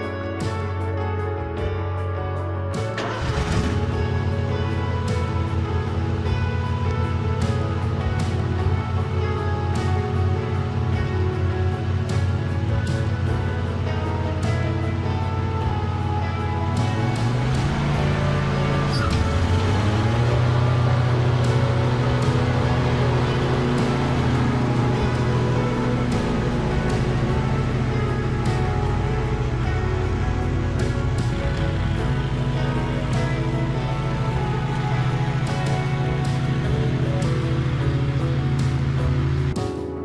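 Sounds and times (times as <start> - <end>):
background music: 0.0 - 40.0
mower engine revving: 2.7 - 39.7.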